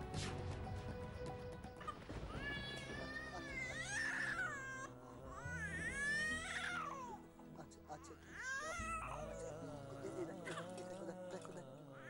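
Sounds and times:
dramatic background music: 0:00.0 - 0:10.8.

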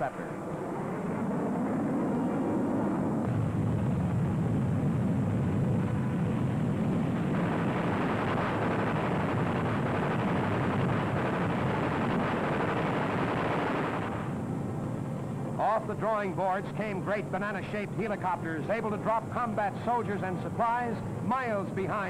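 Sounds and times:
aircraft engine roar: 0:00.0 - 0:22.0.

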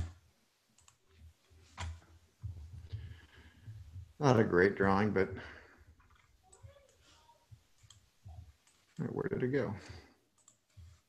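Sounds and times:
computer mouse clicks: 0:00.8 - 0:01.0, 0:07.8 - 0:08.0, 0:10.3 - 0:11.0.

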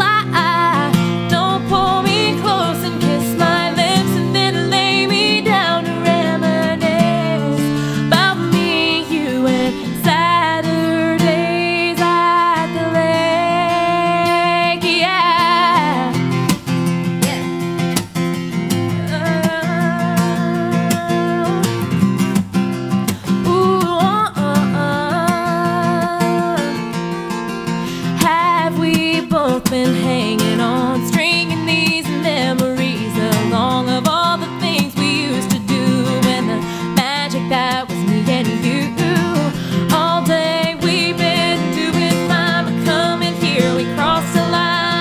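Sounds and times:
woman singing: 0:00.0 - 0:22.3, 0:23.0 - 0:45.0
acoustic guitar strumming: 0:00.0 - 0:45.0.

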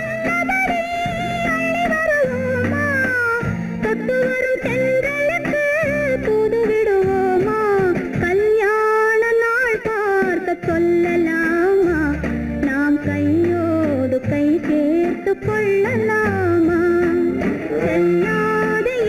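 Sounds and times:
plucked guitar: 0:00.0 - 0:08.6, 0:09.8 - 0:19.0
bass line: 0:15.5 - 0:19.0.

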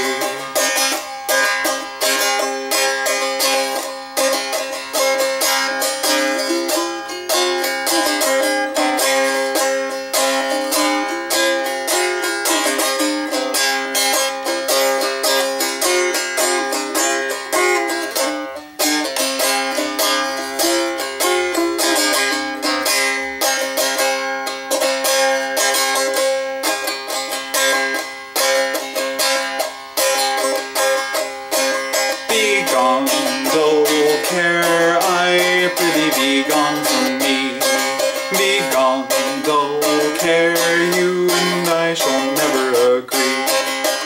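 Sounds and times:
twangy plucked string instrument: 0:00.0 - 0:44.0.

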